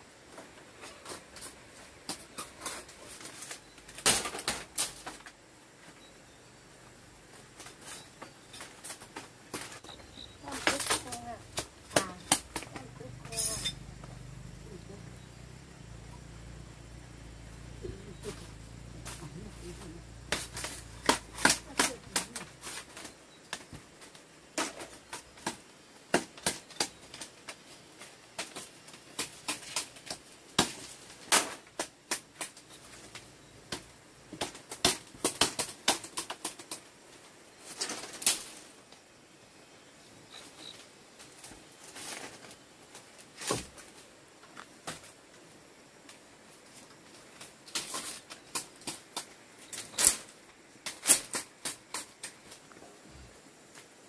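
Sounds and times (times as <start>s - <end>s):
machete chopping bamboo: 10.5s - 13.7s, 19.8s - 23.0s, 24.6s - 27.0s, 33.7s - 36.8s
machete scraping bamboo: 18.8s - 23.2s.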